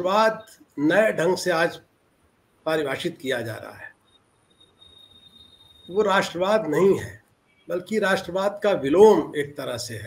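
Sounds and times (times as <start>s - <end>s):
high-pitched insect trill: 3.9s - 7.1s.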